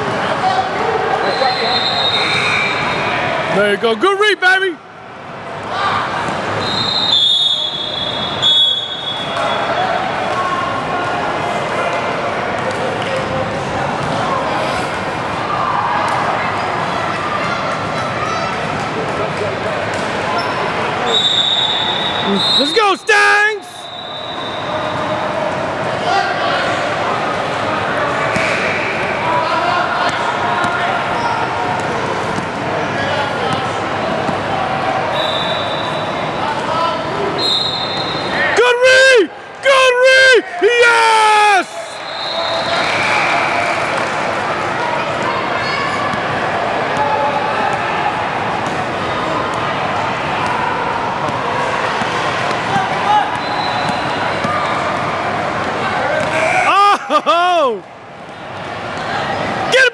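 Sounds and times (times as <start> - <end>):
voices of players and spectators: 0.0 - 59.9
referee's whistle: 1.2 - 3.1, 6.6 - 9.9, 20.4 - 25.2, 35.1 - 36.3, 37.4 - 38.4, 41.6 - 43.8, 53.1 - 54.5.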